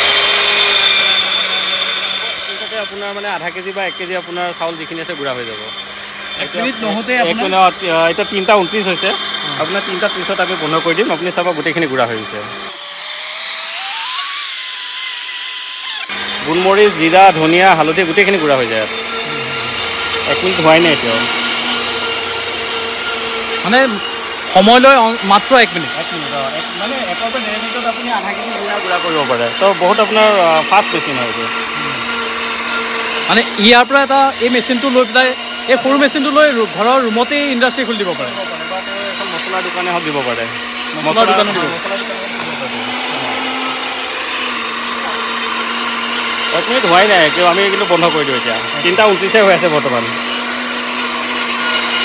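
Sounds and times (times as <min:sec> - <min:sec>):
spice grinder motor whining: 0:00.0 - 0:52.0.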